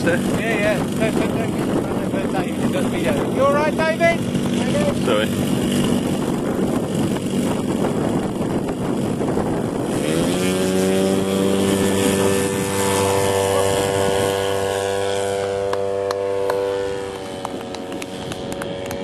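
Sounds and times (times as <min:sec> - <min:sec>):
model airplane engine at full throttle: 0:00.0 - 0:19.0.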